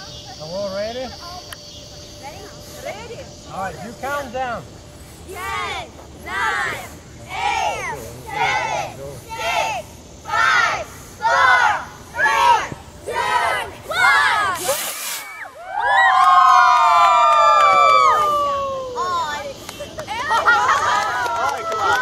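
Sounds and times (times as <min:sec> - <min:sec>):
rocket motor whoosh: 0:05.2 - 0:15.6
children chanting countdown: 0:05.3 - 0:14.6
children cheering and shouting: 0:09.4 - 0:19.5, 0:20.1 - 0:22.0.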